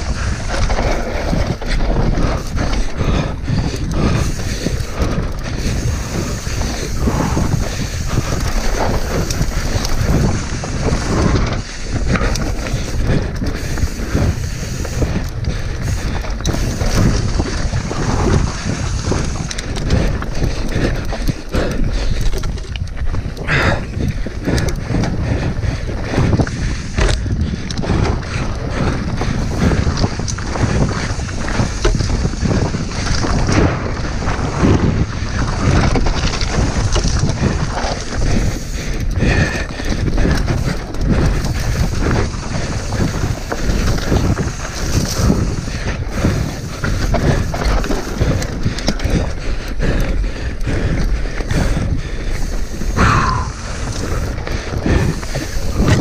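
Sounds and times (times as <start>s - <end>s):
tyres crunching on gravel: 0.0s - 24.0s, 29.0s - 50.3s, 51.1s - 56.0s
bike rattling over bumps: 0.0s - 56.0s
wind noise on microphone: 0.0s - 56.0s.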